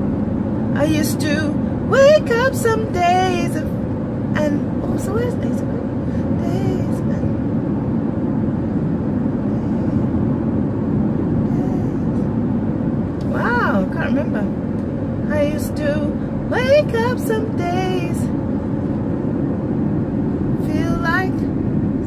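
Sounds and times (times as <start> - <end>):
car road and engine noise: 0.0 - 22.0.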